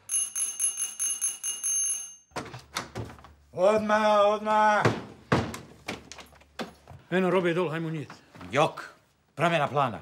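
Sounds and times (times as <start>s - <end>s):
electric doorbell ringing: 0.0s - 2.3s.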